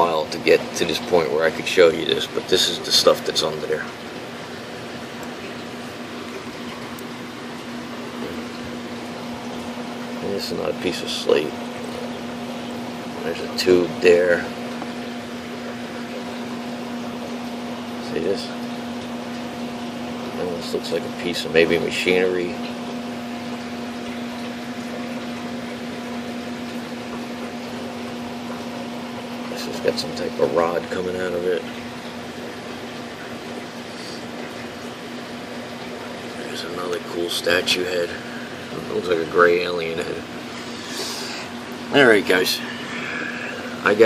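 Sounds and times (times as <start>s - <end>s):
fan-like room noise: 0.0s - 44.0s
steady background hum: 0.0s - 44.0s.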